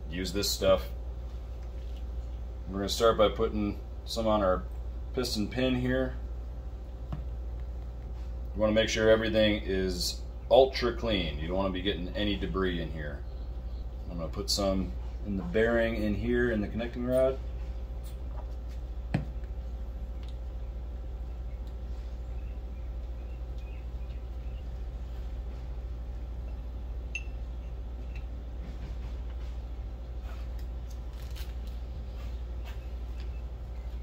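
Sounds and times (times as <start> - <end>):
low room hum: 0.0 - 34.0.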